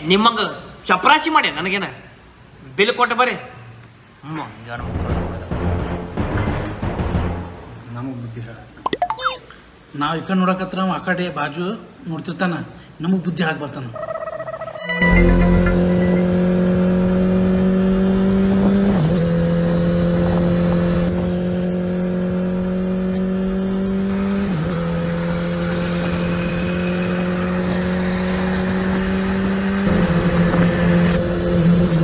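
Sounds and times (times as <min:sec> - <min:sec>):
motorcycle engine running: 0:23.9 - 0:31.9.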